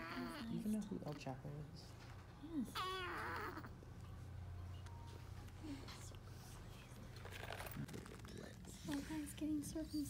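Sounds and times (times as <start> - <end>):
newborn baby crying: 0.0 - 0.6, 2.6 - 3.8.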